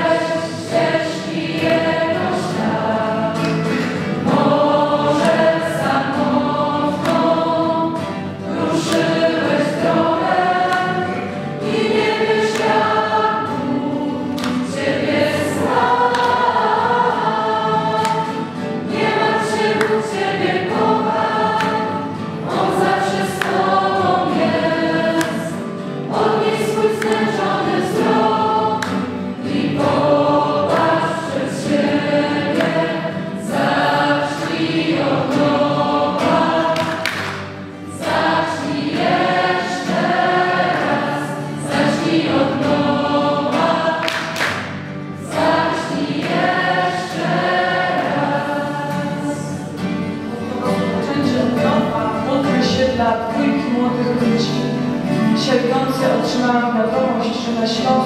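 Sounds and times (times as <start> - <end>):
group singing worship song: 0.0 - 58.0.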